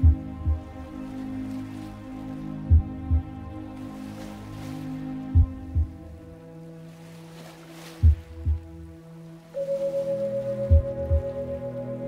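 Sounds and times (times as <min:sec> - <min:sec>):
low heartbeat-like thump: 0:00.0 - 0:00.7, 0:02.7 - 0:03.5, 0:05.3 - 0:06.2, 0:08.0 - 0:08.9, 0:10.7 - 0:11.5
singing bowl drone: 0:09.6 - 0:12.0.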